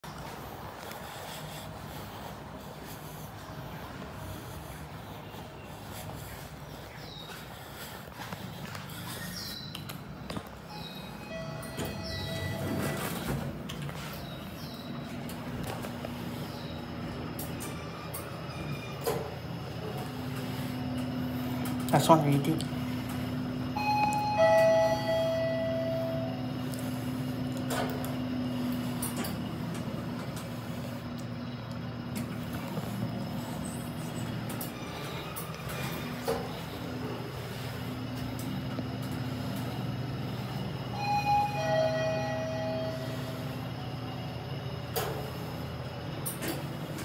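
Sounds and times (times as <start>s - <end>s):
steady low hum: 0.0s - 47.0s.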